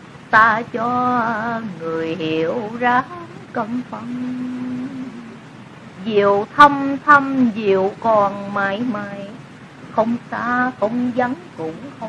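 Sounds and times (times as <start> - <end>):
steady hiss: 0.0 - 12.0
person chanting: 0.4 - 5.4, 10.0 - 12.0.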